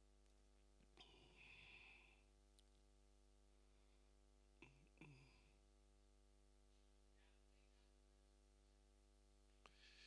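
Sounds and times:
faint electrical hum: 0.0s - 10.0s
faint rush of noise: 0.0s - 10.0s.

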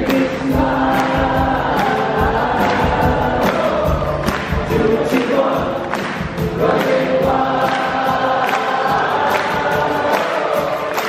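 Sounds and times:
many voices singing chorus: 0.0s - 11.0s.

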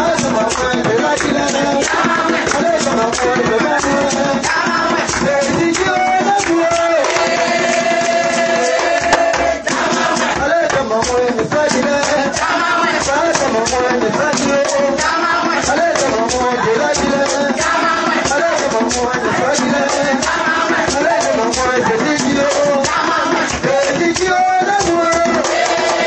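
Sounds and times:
drums beating: 0.0s - 26.0s
person singing: 0.0s - 26.0s.

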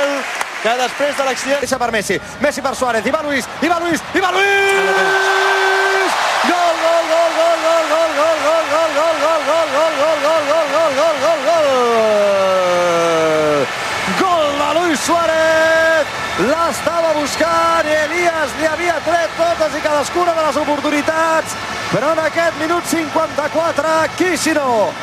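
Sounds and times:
stadium crowd cheering: 0.0s - 25.0s
commentator shouting goal: 2.6s - 24.9s.

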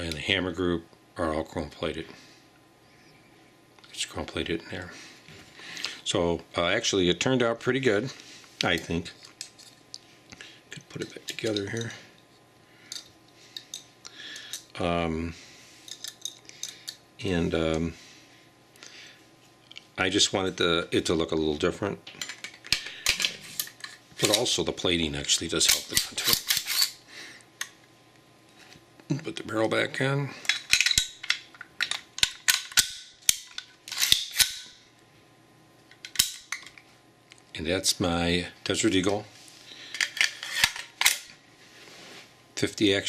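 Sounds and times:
metallic clicks and scraping: 25.6s - 27.0s, 30.4s - 34.7s, 39.9s - 41.3s.

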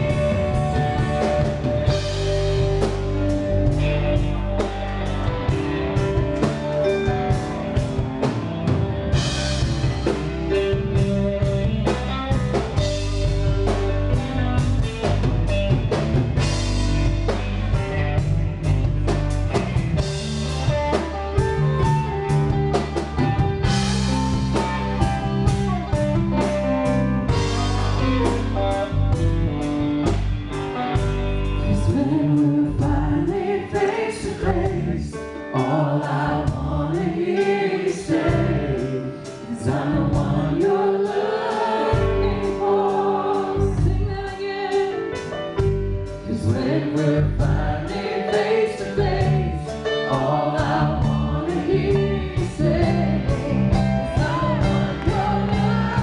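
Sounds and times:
drum kit beat with cymbals: 0.0s - 35.0s, 36.0s - 56.0s
live band playing: 0.0s - 56.0s
person singing: 31.6s - 56.0s.

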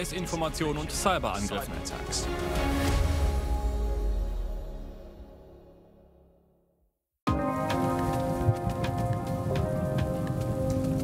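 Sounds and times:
crackling patter: 7.6s - 11.0s.

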